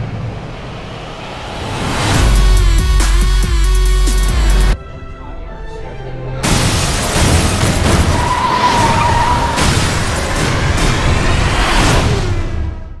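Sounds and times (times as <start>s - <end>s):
dense rush of noise: 0.0s - 2.4s
trailer music: 0.0s - 13.0s.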